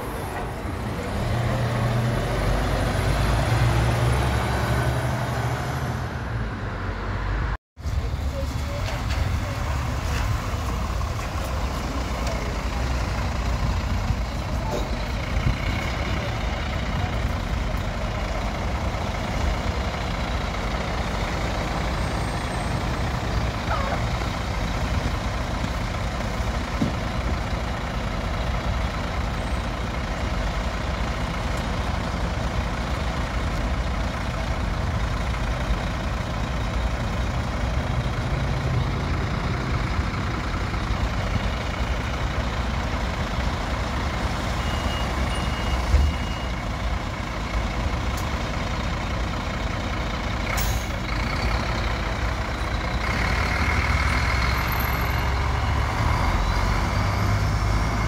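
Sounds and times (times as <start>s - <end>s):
bus engine idling: 7.8s - 58.0s.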